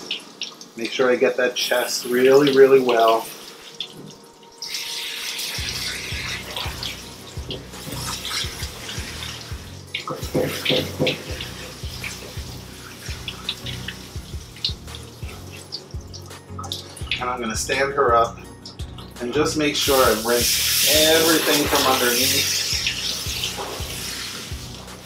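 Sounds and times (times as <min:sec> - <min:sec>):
background music: 0:00.0 - 0:25.0
hose water spraying into tub: 0:00.0 - 0:25.0.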